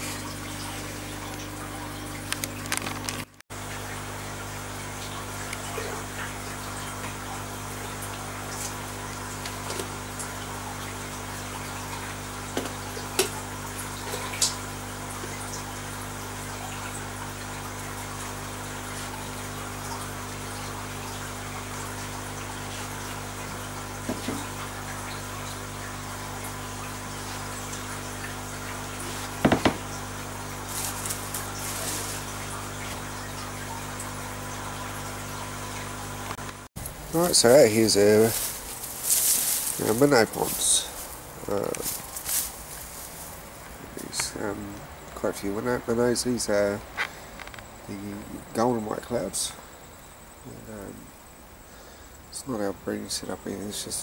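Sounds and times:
water bubbling and trickling: 0:00.0 - 0:45.0
aquarium pump hum: 0:00.0 - 0:54.0
knocks or splashes: 0:24.0 - 0:24.8, 0:29.0 - 0:33.1.

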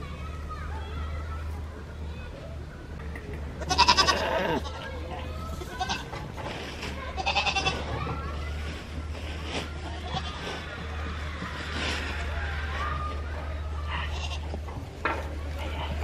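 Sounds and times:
goats bleating: 0:03.6 - 0:04.9, 0:05.6 - 0:06.2, 0:07.1 - 0:07.9, 0:13.8 - 0:14.6.

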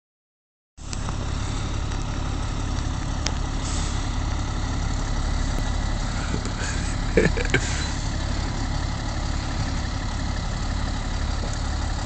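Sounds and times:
diesel engine rumbling: 0:00.8 - 0:12.0.

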